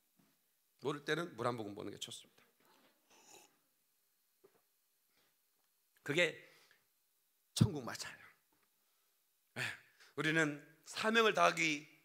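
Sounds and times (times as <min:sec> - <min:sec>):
short breath: 0:06.4 - 0:06.9.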